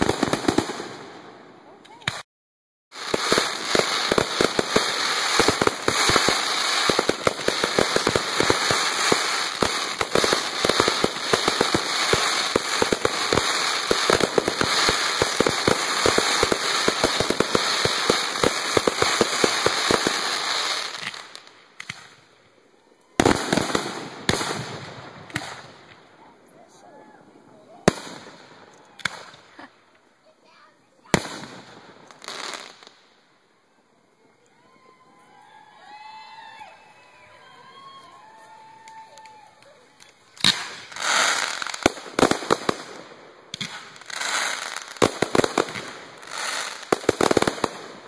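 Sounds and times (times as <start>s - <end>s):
fireworks crackling pops: 0.0s - 2.3s, 2.9s - 22.4s, 23.0s - 26.3s, 27.7s - 33.4s, 38.0s - 48.0s.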